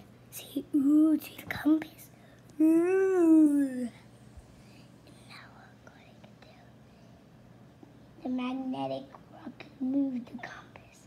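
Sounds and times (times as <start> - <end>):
faint whispering: 5.1 - 6.8, 9.4 - 11.0.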